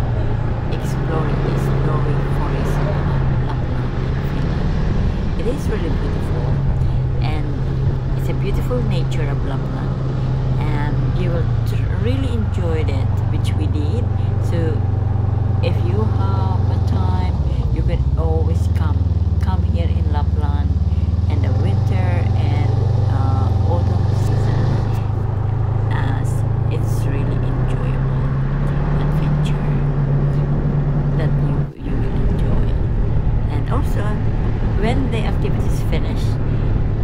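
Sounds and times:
snowmobile engine drone: 0:00.0 - 0:37.0.

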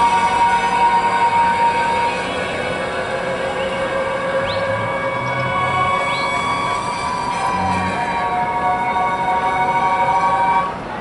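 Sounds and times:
brief rising squeal: 0:00.0 - 0:10.7
crowd background: 0:00.0 - 0:11.0
marching band wind chords: 0:00.0 - 0:11.0.

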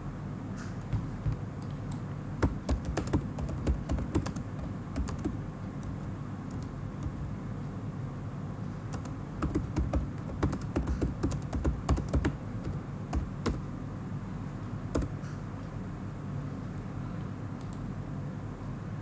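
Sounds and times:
low steady hum: 0:00.0 - 0:19.0
computer keyboard typing: 0:00.9 - 0:07.3, 0:08.9 - 0:13.7, 0:14.9 - 0:15.2.

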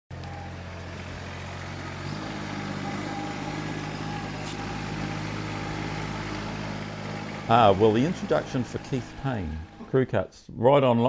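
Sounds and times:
lawn mower engine running: 0:00.1 - 0:10.2.

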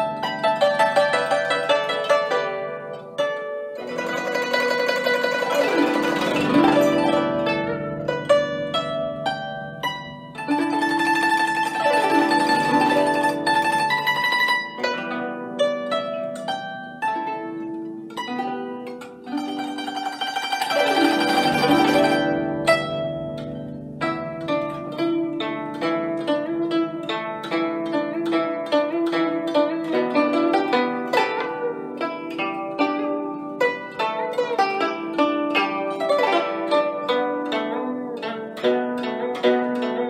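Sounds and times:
plucked zither notes: 0:00.0 - 0:40.0.

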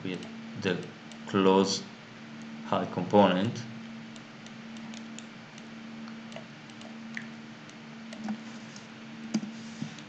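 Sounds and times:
electrical hum and hiss: 0:00.0 - 0:10.0
computer mouse clicks: 0:00.2 - 0:01.3, 0:04.1 - 0:08.4.

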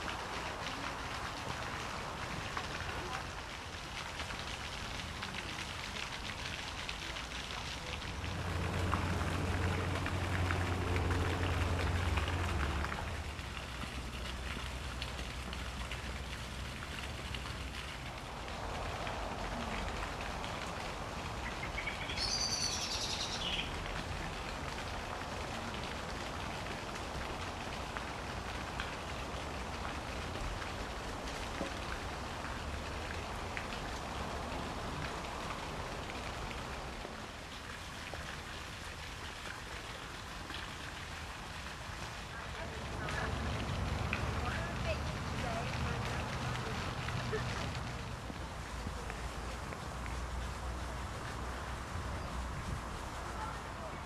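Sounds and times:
steady hiss of water: 0:00.0 - 0:54.0.

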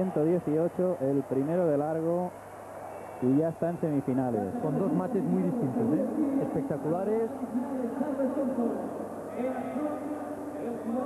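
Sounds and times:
man talking: 0:03.2 - 0:11.0.

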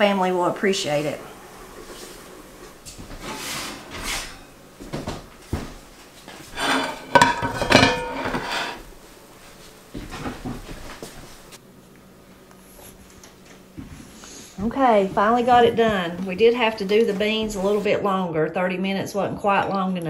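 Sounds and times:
pan clattering against ceramic plate: 0:06.6 - 0:08.8.

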